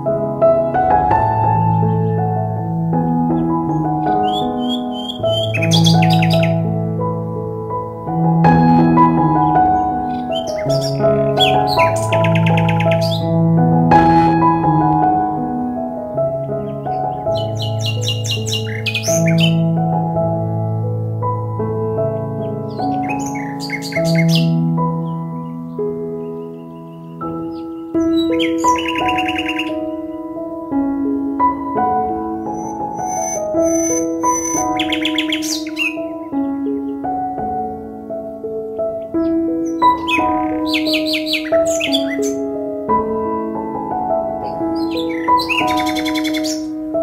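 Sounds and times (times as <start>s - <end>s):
soft instrumental music: 0.0s - 47.0s
high bird chirps: 3.4s - 6.7s, 9.4s - 13.4s, 16.5s - 19.7s, 22.4s - 30.0s, 32.4s - 37.0s, 38.9s - 42.5s, 44.4s - 46.7s.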